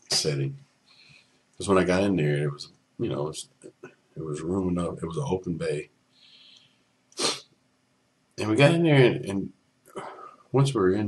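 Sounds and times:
soft exhale: 6.2s - 7.4s.

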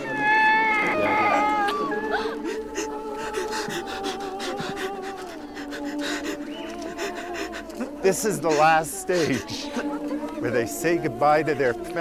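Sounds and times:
high-pitched wail: 0.0s - 2.5s
people crying: 0.0s - 12.0s.

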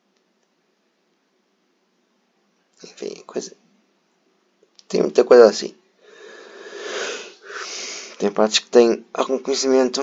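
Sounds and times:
man breathing close to microphone: 6.0s - 8.2s.

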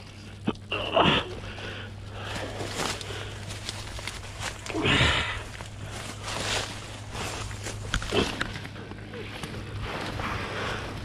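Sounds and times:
corn leaves rustling: 1.0s - 11.0s.

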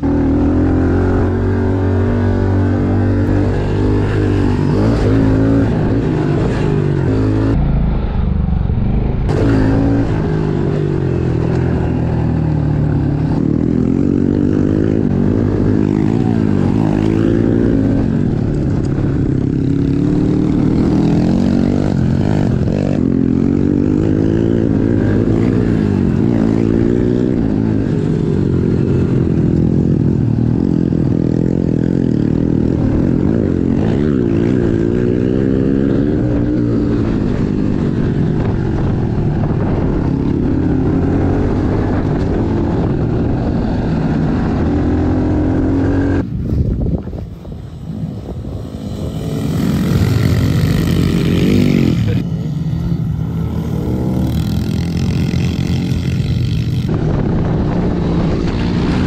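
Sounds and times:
dirt bike engine revving: 0.0s - 8.0s, 9.2s - 59.0s.

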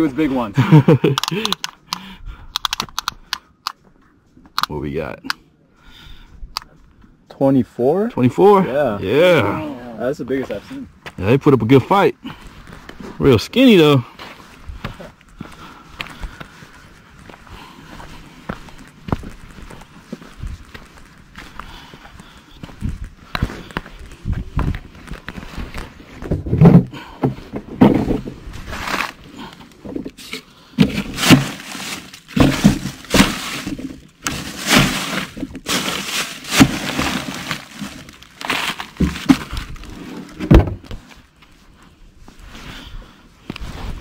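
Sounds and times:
knocks and thumps in cooler: 26.2s - 29.2s, 30.8s - 41.0s
plastic crinkling: 31.2s - 32.3s, 33.0s - 40.0s.

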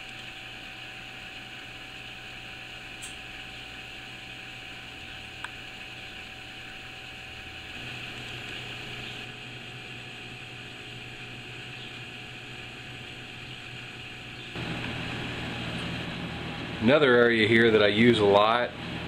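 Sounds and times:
room hum and hiss: 0.0s - 19.0s.

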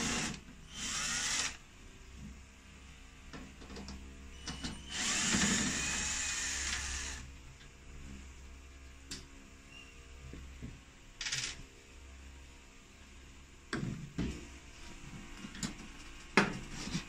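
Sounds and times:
cordless drill running: 0.0s - 1.6s, 4.9s - 7.2s.

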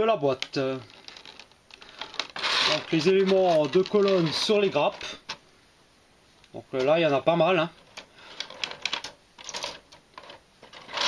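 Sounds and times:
hard plastic clicking and rattling: 7.9s - 11.0s.

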